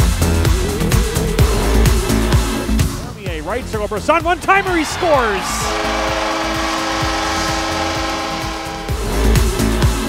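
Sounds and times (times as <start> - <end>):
up-tempo goal music: 0.0 - 10.0
arena goal horn blast: 4.4 - 10.0.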